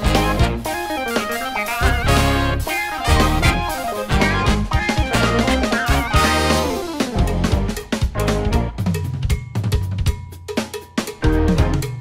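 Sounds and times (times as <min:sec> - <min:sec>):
drum kit playing funk groove: 0:00.0 - 0:12.0.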